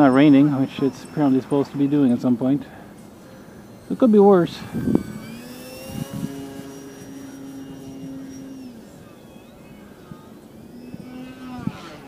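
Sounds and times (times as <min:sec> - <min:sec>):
model plane motor buzzing: 0:00.0 - 0:12.0.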